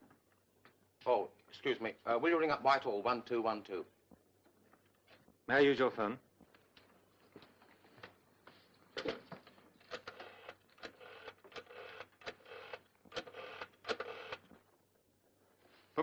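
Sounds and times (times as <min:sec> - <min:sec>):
rotary phone dial whirring and clicking: 0:09.9 - 0:14.6.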